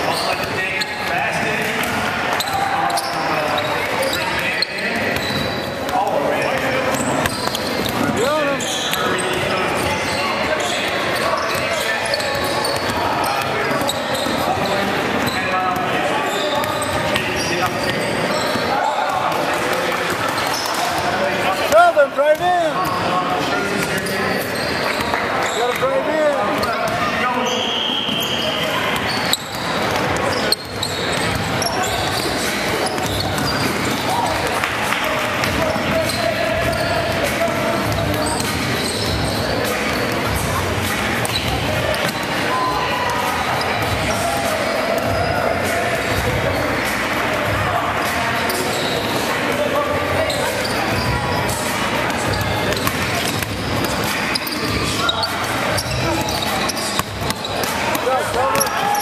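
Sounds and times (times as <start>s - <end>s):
echoing chatter of people: 0.0s - 59.0s.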